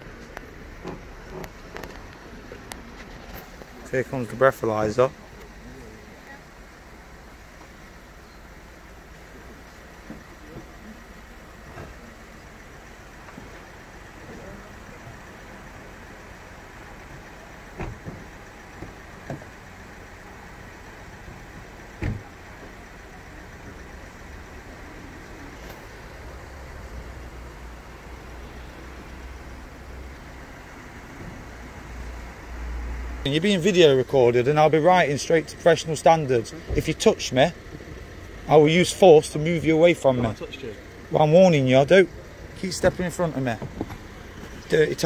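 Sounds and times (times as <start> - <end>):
roadside traffic: 0.0 - 45.0.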